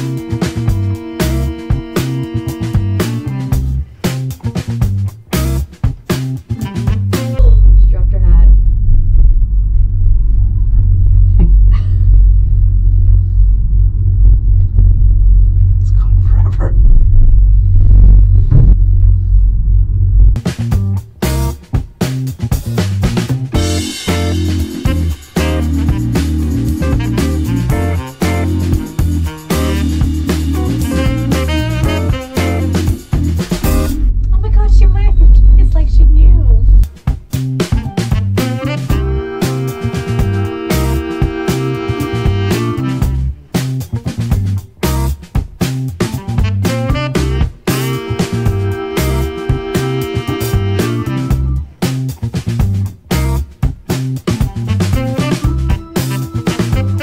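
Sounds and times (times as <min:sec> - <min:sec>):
woman talking: 0:07.2 - 0:08.6, 0:34.2 - 0:36.8
gondola cabin rumbling: 0:07.4 - 0:21.4, 0:29.8 - 0:37.0.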